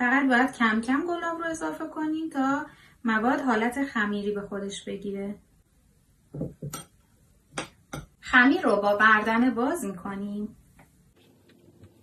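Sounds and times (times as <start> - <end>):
metal spoon clinking ceramic bowl: 7.6 - 8.2.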